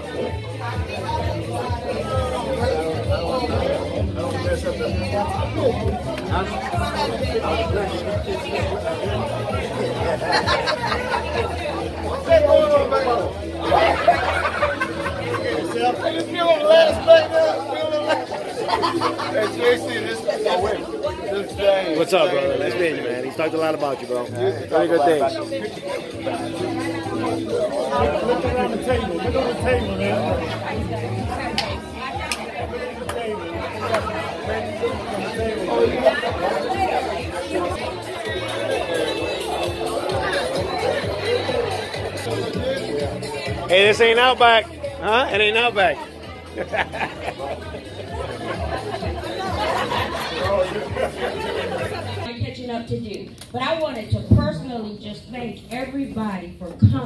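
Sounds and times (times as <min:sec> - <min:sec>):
music with a steady beat: 0:00.0 - 0:19.2, 0:26.1 - 0:50.1
guests chattering: 0:00.0 - 0:57.0
people talking over one another: 0:00.0 - 0:57.0.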